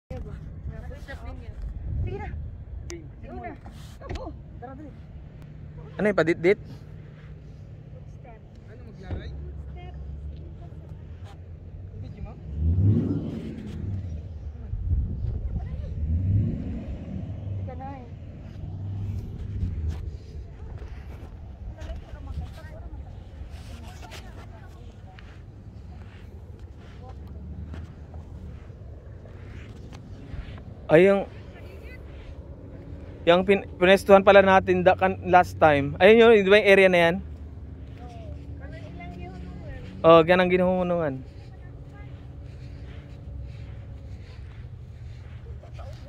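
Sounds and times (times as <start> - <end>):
wind buffeting microphone: 0.1 - 3.5, 12.4 - 34.3.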